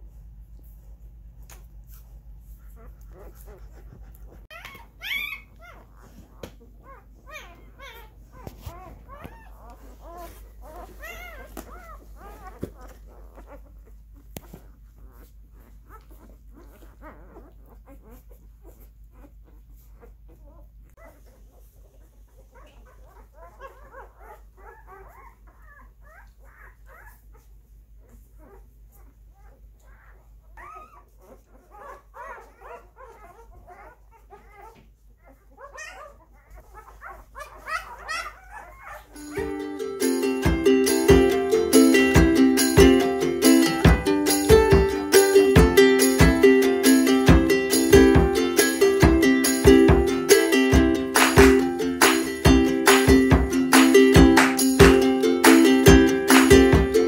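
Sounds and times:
puppies squeaking and whimpering: 0:01.9 - 0:39.8
music: 0:39.2 - 0:57.0.

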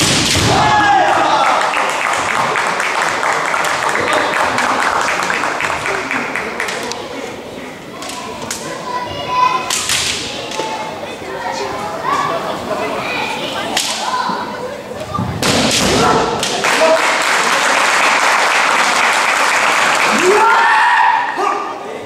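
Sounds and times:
fighters shouting: 0:20.1 - 0:21.8.

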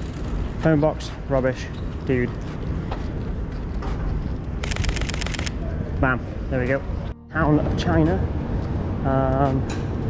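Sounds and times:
street rumble: 0:00.0 - 0:10.0
camera shutter clicks: 0:04.6 - 0:05.5.

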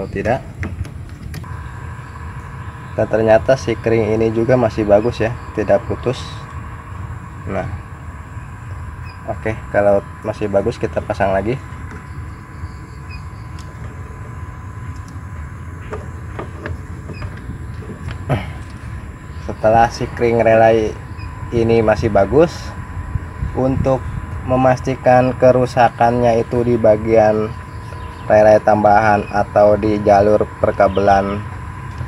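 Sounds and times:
low background rumble: 0:00.0 - 0:32.0
steady high tone: 0:01.4 - 0:32.0.

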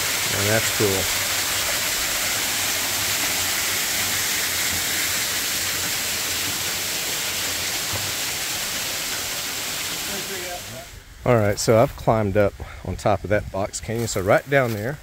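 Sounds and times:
small waterfall splashing: 0:00.0 - 0:11.1.

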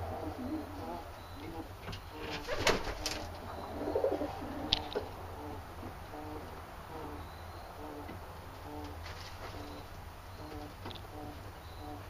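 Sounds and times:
pigeons cooing: 0:00.0 - 0:12.0.

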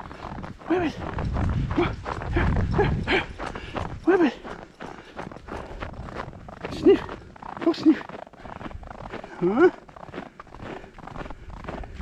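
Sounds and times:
footsteps crunching in snow: 0:00.0 - 0:12.0.

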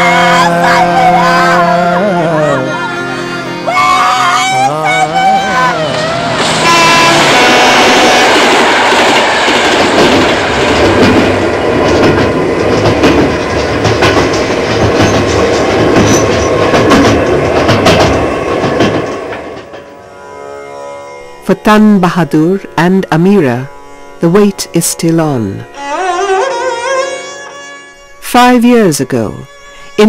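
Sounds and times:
train horn: 0:00.0 - 0:10.7
train rumbling: 0:00.0 - 0:20.4
wheels clicking over rail joints: 0:09.2 - 0:20.0.

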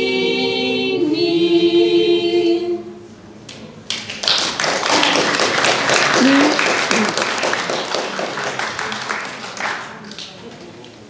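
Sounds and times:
audience applauding: 0:03.9 - 0:11.0.

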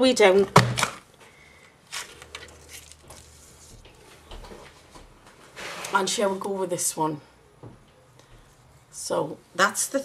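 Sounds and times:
paper rustling: 0:01.9 - 0:03.8.

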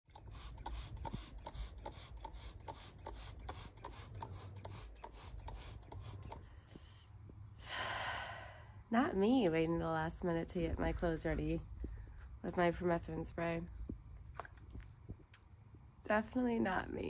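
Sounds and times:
spray bottle squirts: 0:00.1 - 0:06.4.

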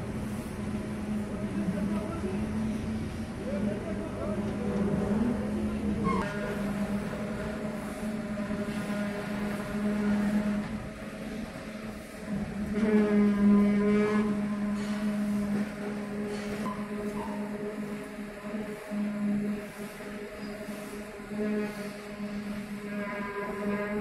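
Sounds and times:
machinery humming: 0:00.0 - 0:24.0.

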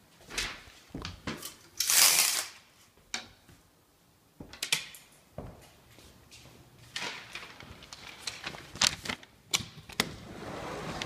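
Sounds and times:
sliding glass door clacking: 0:10.0 - 0:11.0.

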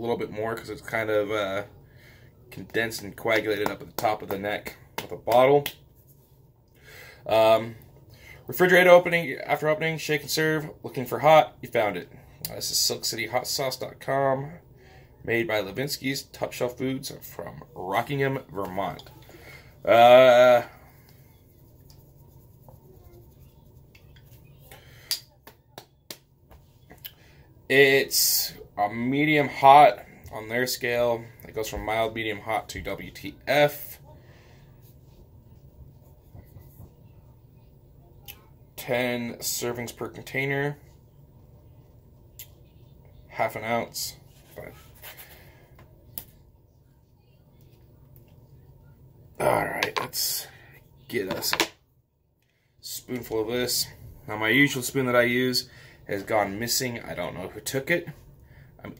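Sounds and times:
low room hum: 0:00.0 - 0:58.9
faint handling of objects: 0:39.4 - 0:49.0.

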